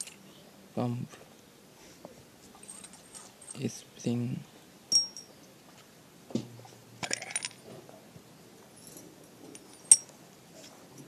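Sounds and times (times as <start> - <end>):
metal parts clinking: 4.9 - 5.3, 7.0 - 7.6, 8.8 - 10.1
soft knock: 6.3 - 6.6.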